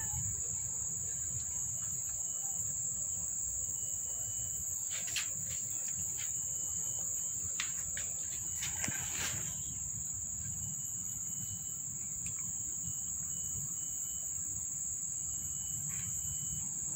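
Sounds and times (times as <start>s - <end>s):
high-pitched insect trill: 0.0s - 16.9s.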